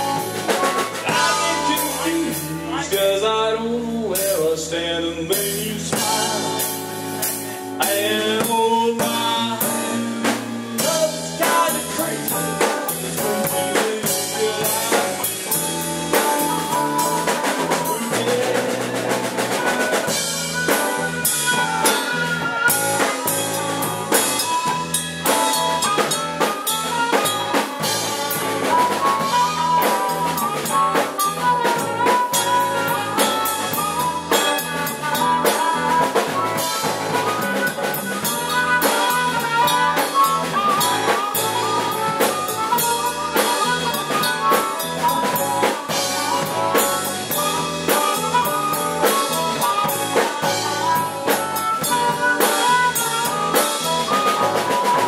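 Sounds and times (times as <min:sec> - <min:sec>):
harmonica melody: 0:00.0 - 0:03.6, 0:05.4 - 0:55.0
drum kit beat: 0:00.0 - 0:04.7, 0:05.3 - 0:55.0
electric bass: 0:00.0 - 0:55.0
electric guitar: 0:00.0 - 0:55.0.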